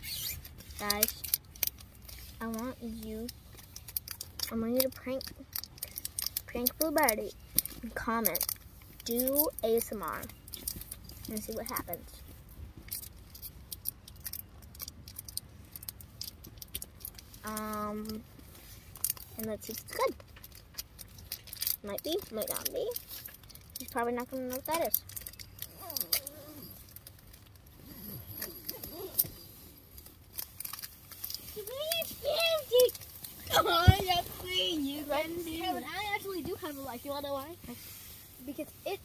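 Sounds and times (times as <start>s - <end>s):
small hard objects clicking: 0.4s - 35.7s.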